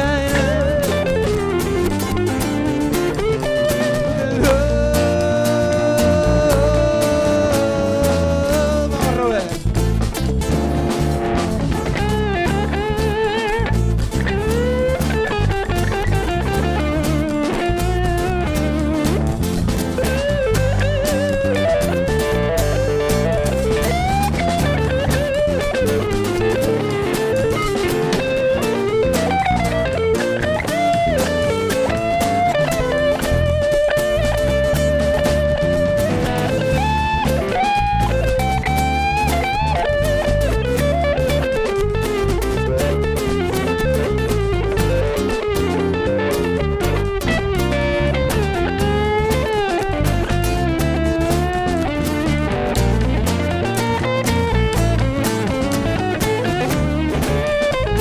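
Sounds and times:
electric guitar lead: 0.0s - 58.0s
live band backing: 0.0s - 58.0s.

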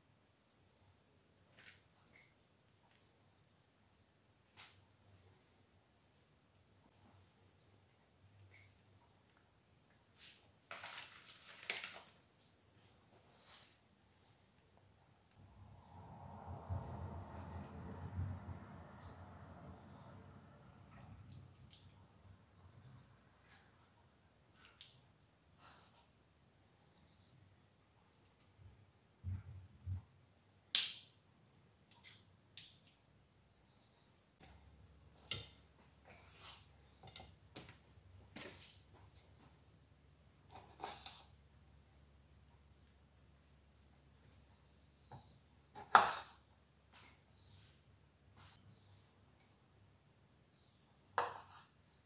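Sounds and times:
paper sheets rustling and crinkling: 10.2s - 12.6s.

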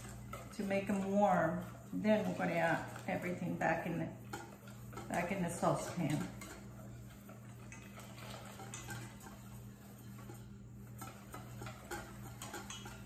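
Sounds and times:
steady low hum: 0.0s - 13.0s
whisk ticking against metal bowl: 0.0s - 13.0s.

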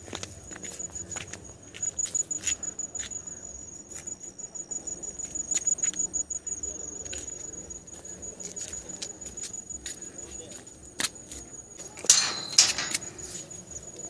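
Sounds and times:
insect trilling: 0.7s - 11.8s.

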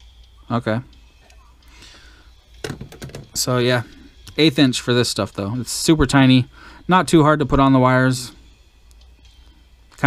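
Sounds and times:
sharp clicks and knocks: 2.6s - 3.4s.

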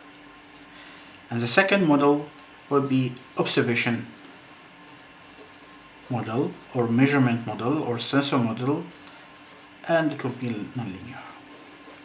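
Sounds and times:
pen writing on paper: 4.2s - 5.8s, 9.4s - 9.7s, 11.2s - 12.0s.

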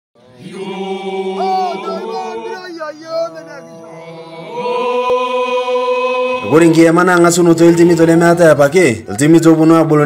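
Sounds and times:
voices chanting long notes: 0.2s - 8.0s
higher voice gliding: 0.4s - 7.0s.

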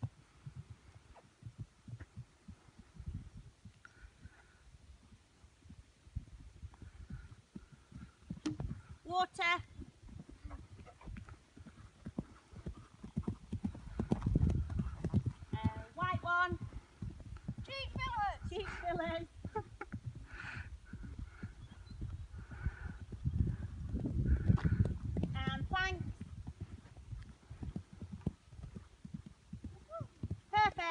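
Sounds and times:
pony hoofbeats on grass: 0.0s - 30.9s.

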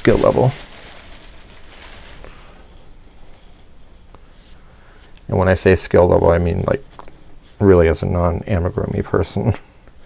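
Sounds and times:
hands handling stuffing: 0.0s - 2.8s.

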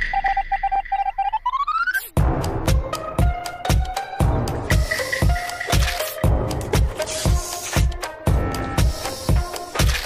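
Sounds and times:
short electronic beeps: 0.0s - 2.1s
rising electronic tone: 0.0s - 2.2s.

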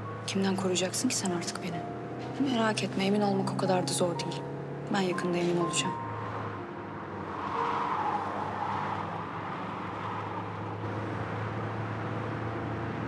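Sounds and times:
car engine hum: 0.0s - 13.0s
road noise: 0.0s - 13.0s.

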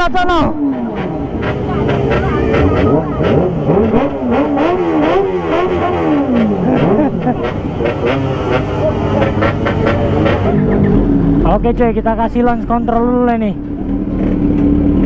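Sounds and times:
motorcycle engines revving: 0.0s - 15.0s.

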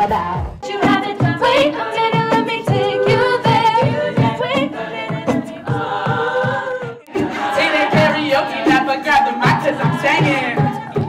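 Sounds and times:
steady pulsing beat: 0.0s - 11.0s
women singing in harmony: 0.6s - 9.0s, 9.7s - 11.0s.

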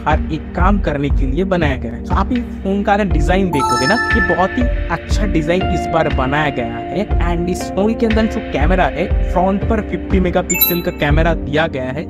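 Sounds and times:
background music: 1.4s - 12.0s
electronic chime: 3.5s - 5.0s, 10.5s - 11.1s.

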